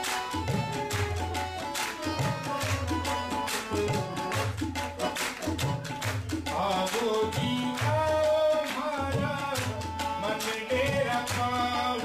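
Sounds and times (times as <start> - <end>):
tabla strokes: 0.0 - 12.0.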